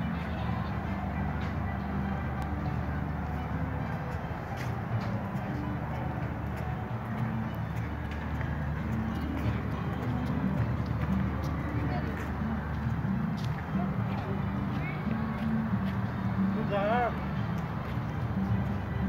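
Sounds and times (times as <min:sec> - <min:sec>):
background chatter of people: 0:00.0 - 0:19.0.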